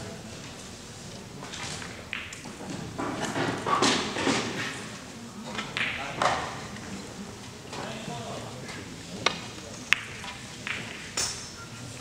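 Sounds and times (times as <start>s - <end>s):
sharp knocks echoing in a hall: 5.7s - 6.3s.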